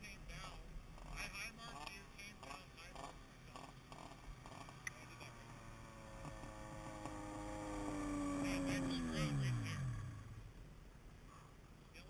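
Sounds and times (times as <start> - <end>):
snowmobile engine passing: 0.3 - 10.5.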